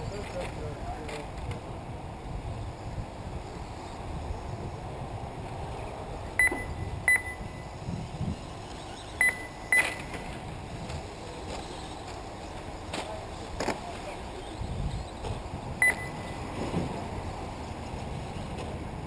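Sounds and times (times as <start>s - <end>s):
short high electronic beeps: 6.4s - 7.8s, 9.2s - 10.3s, 15.8s - 16.5s.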